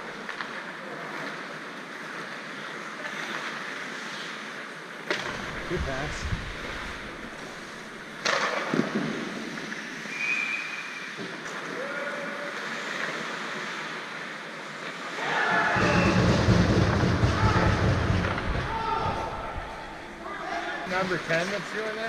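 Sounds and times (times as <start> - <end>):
skates scraping on ice: 2.2 - 11.4
sharp crack: 5.0 - 9.0
hockey sticks and puck clacking: 7.3 - 10.2.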